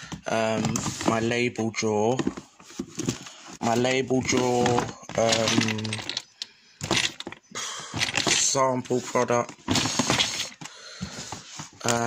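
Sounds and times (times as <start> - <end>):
glass bottles clinking: 3.7 - 8.6, 9.2 - 10.7.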